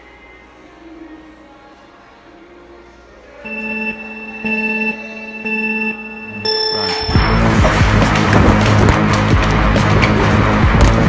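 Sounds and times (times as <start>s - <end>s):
electronic countdown beeps: 3.4s - 7.6s.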